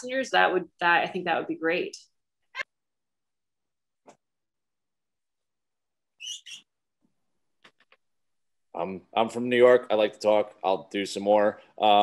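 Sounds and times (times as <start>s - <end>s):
animal chirping: 6.2s - 6.7s.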